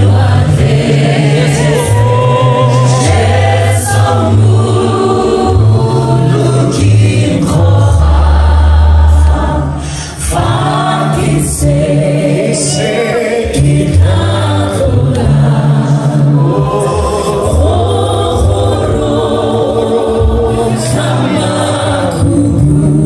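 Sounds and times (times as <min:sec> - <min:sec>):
deep bass notes: 0:00.0 - 0:12.7, 0:13.3 - 0:23.0
congregation singing: 0:00.0 - 0:23.0
singers on microphones: 0:00.0 - 0:23.0.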